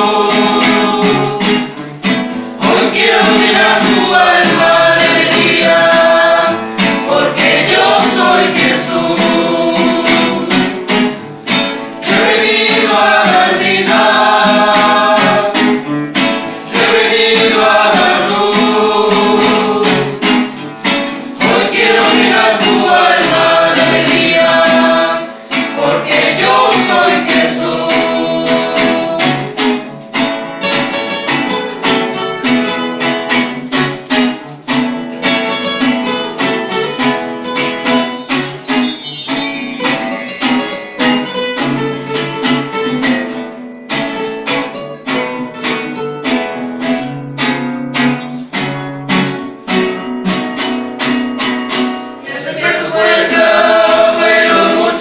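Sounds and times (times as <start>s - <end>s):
group singing in unison: 0.0s - 11.1s, 11.9s - 15.9s, 16.5s - 20.6s, 21.2s - 29.9s, 52.2s - 55.0s
strummed acoustic guitars: 0.0s - 55.0s.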